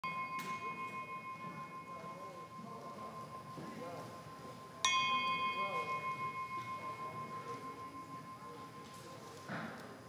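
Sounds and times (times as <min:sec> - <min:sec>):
hand bell ringing: 0:00.0 - 0:09.2.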